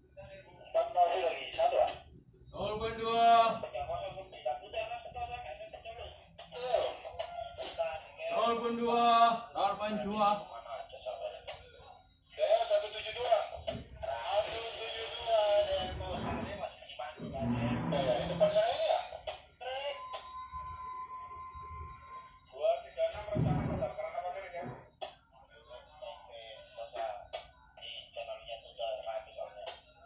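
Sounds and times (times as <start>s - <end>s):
men talking indistinctly: 0.0s - 20.3s, 22.5s - 29.9s.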